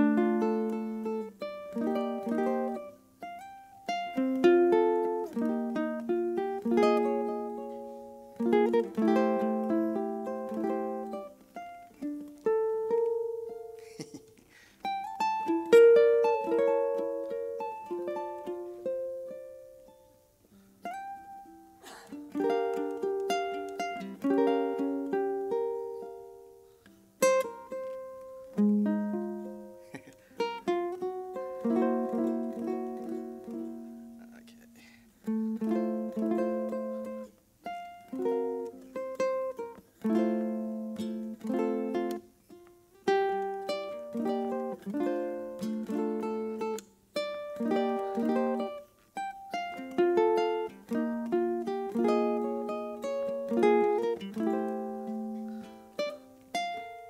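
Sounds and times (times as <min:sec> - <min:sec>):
ukulele playing jazz: 0:00.0 - 0:57.0.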